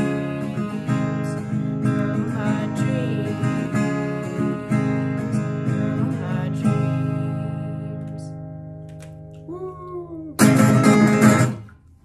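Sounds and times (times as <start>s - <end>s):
acoustic guitar chord strummed: 0.0s - 9.3s, 10.4s - 11.7s.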